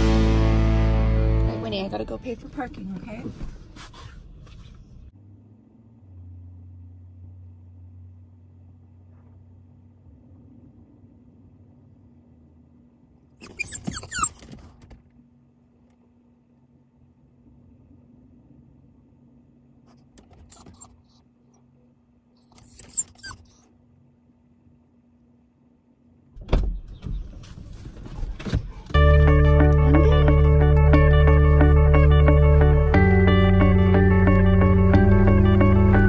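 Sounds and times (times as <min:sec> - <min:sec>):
dog making noises: 0:22.4 - 0:23.7
low steady hum: 0:28.9 - 0:36.0.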